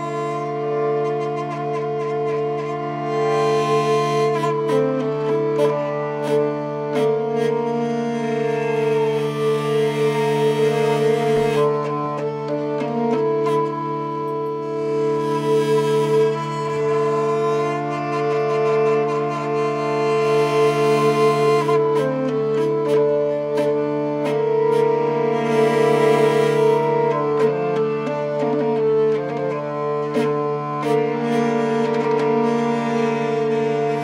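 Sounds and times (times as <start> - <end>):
hurdy-gurdy playing a melody: 0.0 - 34.0.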